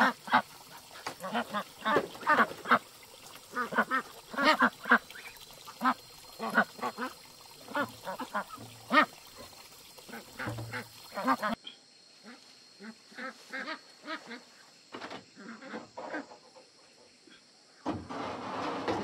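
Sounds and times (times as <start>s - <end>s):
ducks quacking: 0.0s - 9.5s, 10.1s - 11.6s.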